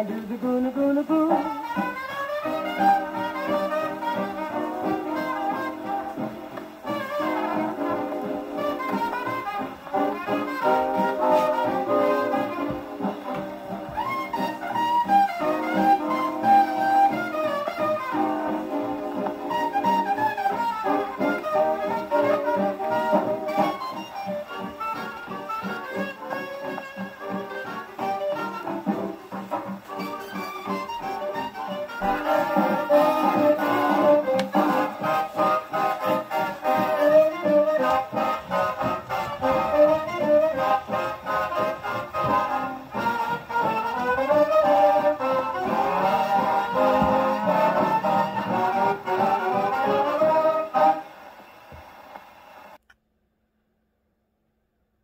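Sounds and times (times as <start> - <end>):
swing band on a phonograph: 0.0 - 52.8.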